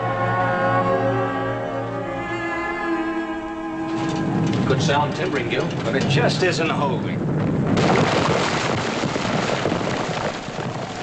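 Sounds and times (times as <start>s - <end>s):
orchestral string chords: 0.0s - 6.3s
noisy rumble with clatter: 3.8s - 11.0s.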